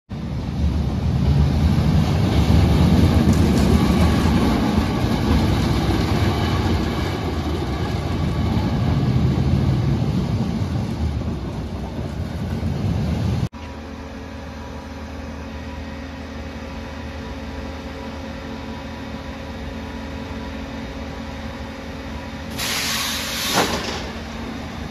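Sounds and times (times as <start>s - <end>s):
roller coaster rumbling on track: 0.1s - 13.5s, 23.5s - 24.9s.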